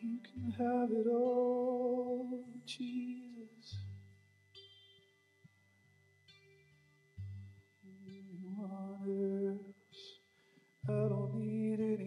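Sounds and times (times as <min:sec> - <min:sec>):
person singing long notes: 0:00.0 - 0:03.8, 0:07.8 - 0:10.2, 0:10.8 - 0:12.0.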